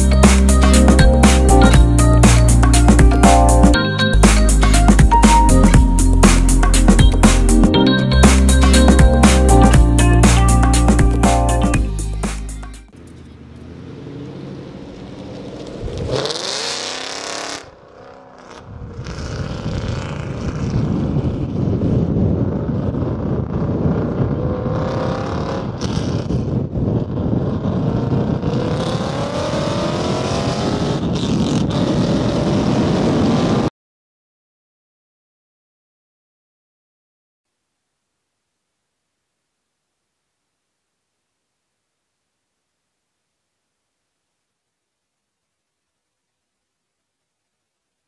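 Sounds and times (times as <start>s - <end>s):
road and wind noise: 0.0s - 33.7s
car engine accelerating: 12.9s - 21.3s.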